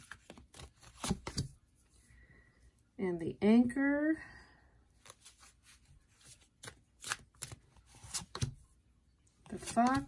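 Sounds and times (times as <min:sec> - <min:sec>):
cards sliding and flicking: 0:00.0 - 0:01.6, 0:05.0 - 0:08.6.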